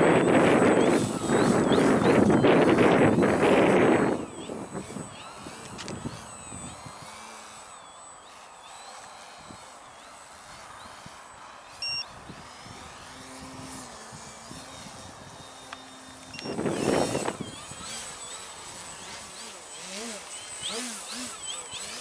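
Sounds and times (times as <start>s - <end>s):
model plane electric motor whine: 0.0s - 22.0s
short beep: 11.8s - 12.0s.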